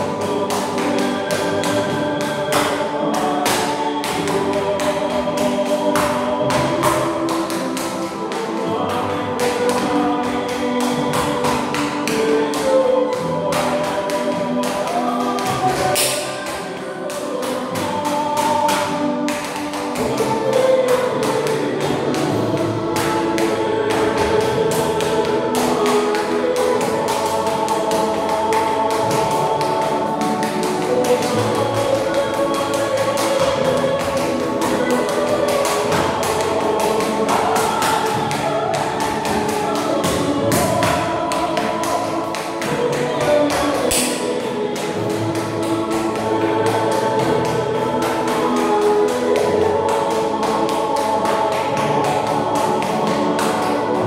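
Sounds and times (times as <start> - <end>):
hard shoes tapping on tiles: 0.0 - 54.0
music with choir-like voices: 0.0 - 54.0.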